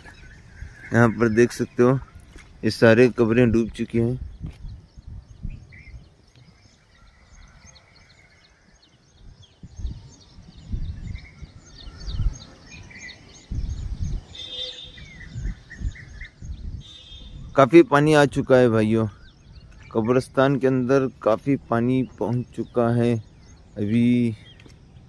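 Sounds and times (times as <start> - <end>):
microphone rumbling: 0.0 - 6.2, 9.2 - 17.7
small birds chirping: 0.0 - 25.0.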